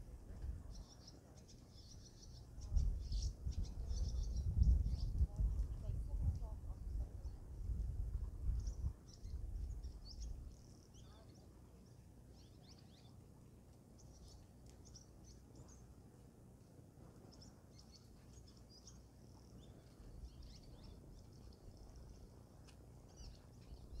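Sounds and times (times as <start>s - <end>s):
small birds chirping: 0.0s - 16.0s, 17.2s - 24.0s
low steady outdoor rumble: 0.0s - 24.0s.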